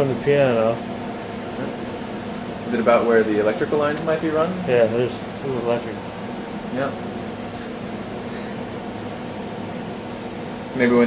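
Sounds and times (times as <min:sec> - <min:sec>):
fan running with low hum: 0:00.0 - 0:11.0.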